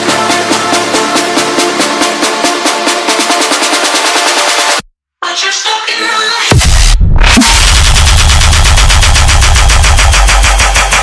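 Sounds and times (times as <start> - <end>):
electronic dance music: 0.0 - 4.8, 6.0 - 11.0.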